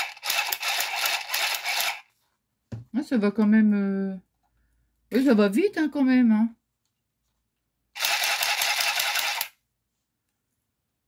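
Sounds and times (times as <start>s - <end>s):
sewing machine stitching: 0.0s - 2.1s, 8.0s - 9.5s.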